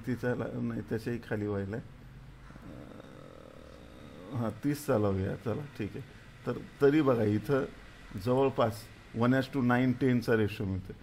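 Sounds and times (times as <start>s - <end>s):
man humming: 2.5s - 4.7s.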